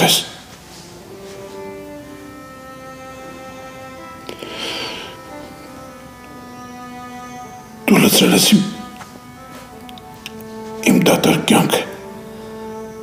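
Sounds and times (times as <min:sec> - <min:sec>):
soft sustained background score: 0:00.0 - 0:13.0.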